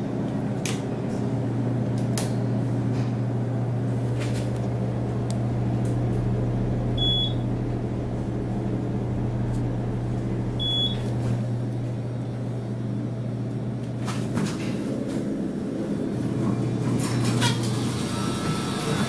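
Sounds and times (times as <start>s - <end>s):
elevator low hum: 0.0s - 19.0s
short high beeps: 7.0s - 7.4s, 10.6s - 11.0s.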